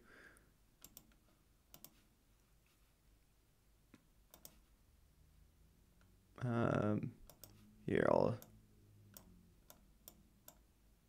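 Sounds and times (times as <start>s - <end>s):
faint computer mouse clicks: 0.8s - 2.0s, 3.9s - 4.6s, 7.2s - 7.6s.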